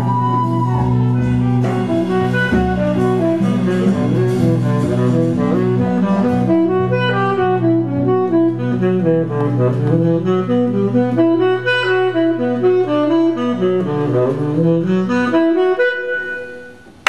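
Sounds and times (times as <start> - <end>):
drums: 0.0 - 11.5
bass and guitar drone: 0.0 - 15.8
saxophone melody: 0.0 - 17.0.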